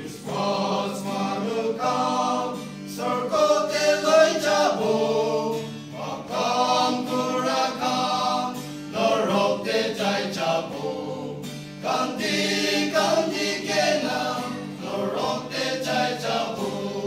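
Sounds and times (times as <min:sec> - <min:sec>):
acoustic guitar: 0:00.0 - 0:17.0
male group singing a hymn: 0:00.0 - 0:17.0.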